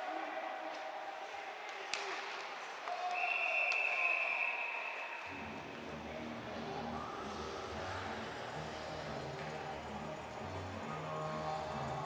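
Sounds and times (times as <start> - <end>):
referee's whistle long note: 3.1 - 5.3.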